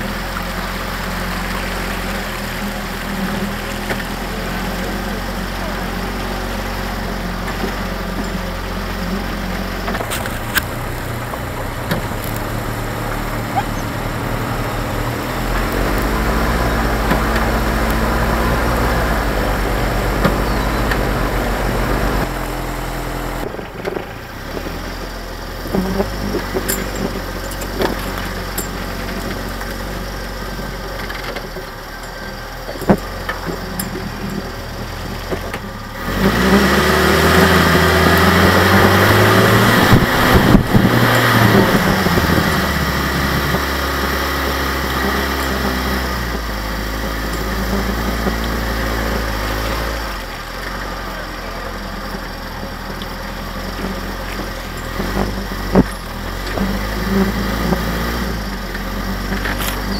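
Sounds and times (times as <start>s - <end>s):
jeep engine running: 0.0s - 59.9s.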